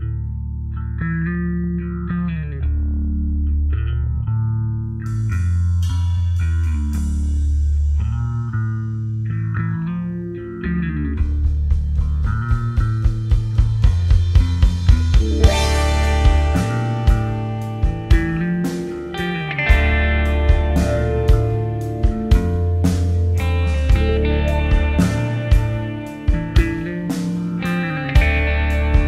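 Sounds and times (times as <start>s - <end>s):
bass guitar notes: 0.0s - 29.0s
steady drum beat: 11.2s - 29.0s
electric guitar riff: 14.4s - 29.0s.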